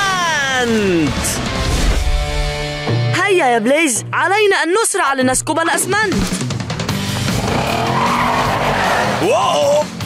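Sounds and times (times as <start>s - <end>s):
background music: 0.0s - 10.0s
hissing tyre skid: 7.3s - 9.2s.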